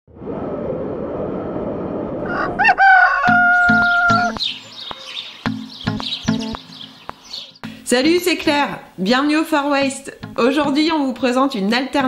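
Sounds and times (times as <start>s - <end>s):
rooster crowing: 2.2s - 4.4s
music with repeated low notes: 5.4s - 8.3s, 9.7s - 11.5s.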